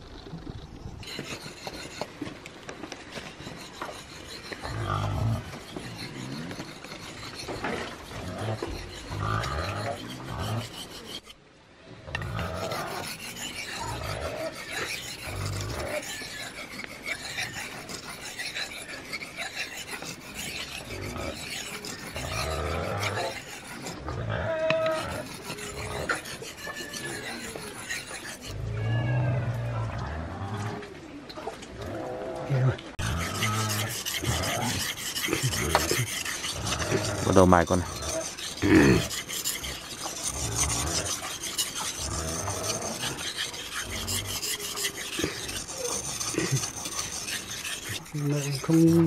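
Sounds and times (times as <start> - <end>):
knife scraping on whetstone: 0.7 - 11.4, 12.2 - 28.6, 32.9 - 49.0.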